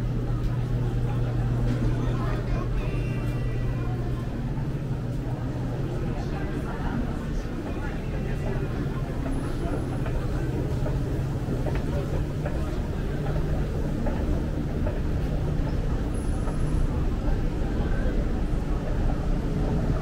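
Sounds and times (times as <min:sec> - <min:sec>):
indistinct voices of shoppers: 0:00.0 - 0:20.0
steady low hum: 0:00.0 - 0:20.0.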